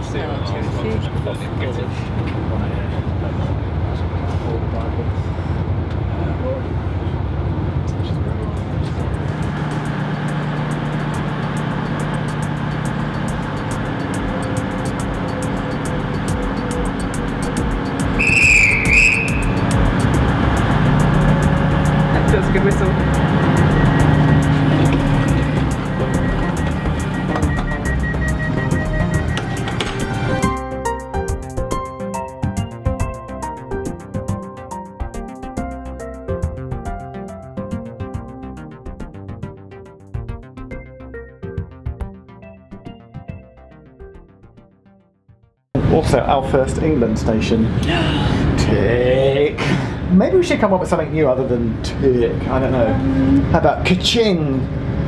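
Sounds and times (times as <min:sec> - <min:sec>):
diesel train engine rumble: 0:00.0 - 0:30.6, 0:45.8 - 0:55.0
music: 0:08.8 - 0:46.6
shrill trilling whistle: 0:18.2 - 0:19.6.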